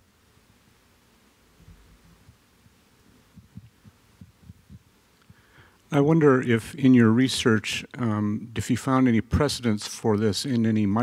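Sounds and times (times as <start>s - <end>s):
faint low thumps: 1.6s - 5.5s.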